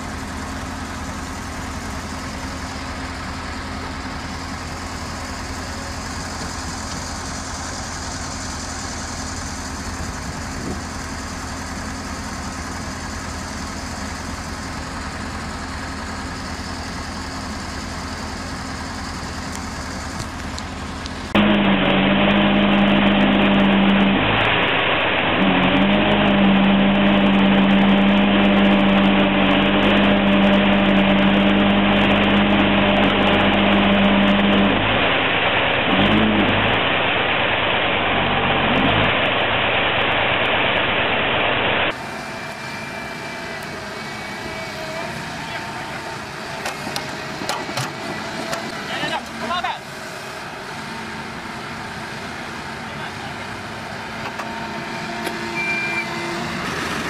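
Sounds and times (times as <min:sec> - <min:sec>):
backhoe loader engine running: 0:00.0 - 0:57.0
crawler tractor engine droning: 0:00.0 - 0:57.0
excavator engine running: 0:00.0 - 0:57.0.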